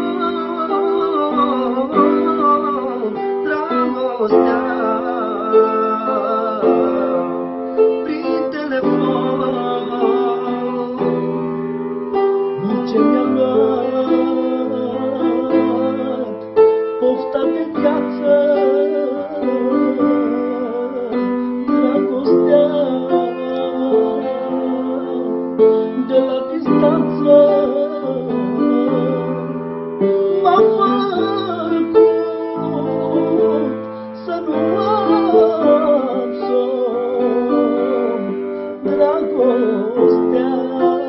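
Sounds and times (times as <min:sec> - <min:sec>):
man singing ornamented melody: 0:00.0 - 0:41.0
piano chords: 0:00.0 - 0:41.0.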